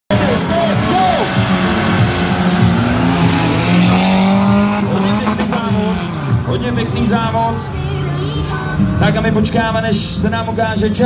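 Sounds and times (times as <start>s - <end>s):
car engines revving hard: 0.1s - 11.0s.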